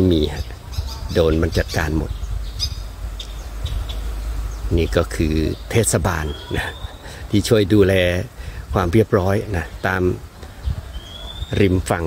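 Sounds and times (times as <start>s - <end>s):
high bird chirps: 0.2s - 7.2s, 10.6s - 12.0s
steady low rumble: 0.4s - 10.9s.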